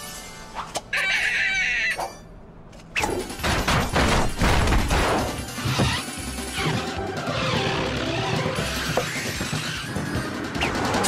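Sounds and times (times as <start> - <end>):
cartoon background music: 3.0 - 11.0.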